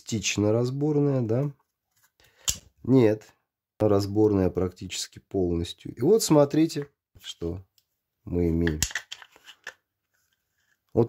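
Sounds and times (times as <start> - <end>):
plastic parts clicking: 8.6 - 9.8.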